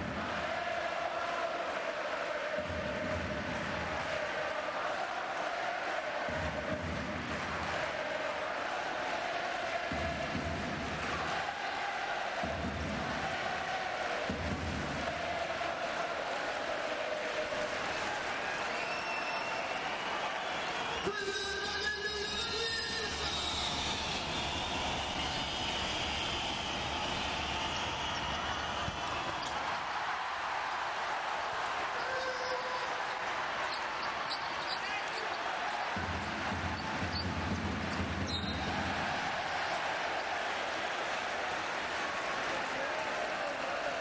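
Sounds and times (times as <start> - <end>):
crowd noise: 0.0 - 44.0.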